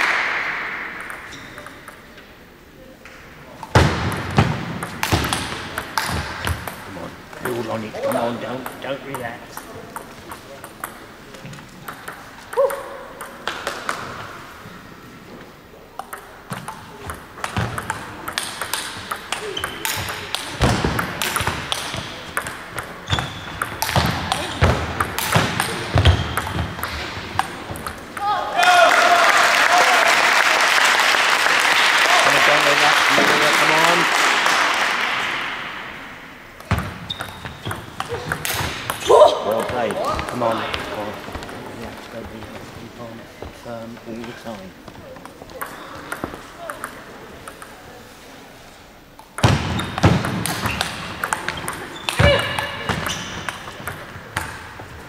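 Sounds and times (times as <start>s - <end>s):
applause: 0.0s - 0.5s, 28.8s - 35.5s
table tennis ball clicking: 11.8s - 14.0s, 16.0s - 28.3s, 36.6s - 40.8s, 45.6s - 47.8s, 49.2s - 54.6s.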